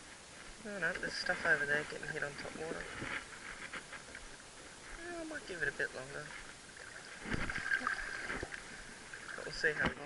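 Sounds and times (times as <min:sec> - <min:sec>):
shallow water lapping and splashing: 0:01.1 - 0:10.0.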